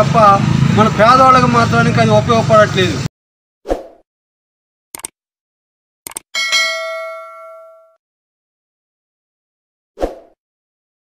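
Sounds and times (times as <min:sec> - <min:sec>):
notification bell ding: 0:06.4 - 0:08.0.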